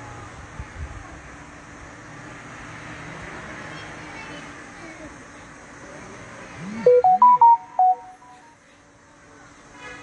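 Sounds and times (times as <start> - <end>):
electronic chime melody: 6.7 - 8.5.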